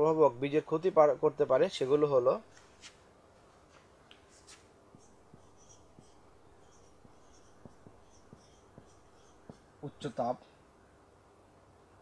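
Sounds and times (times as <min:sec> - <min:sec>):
marker pen squeaking on whiteboard: 0:04.4 - 0:09.9.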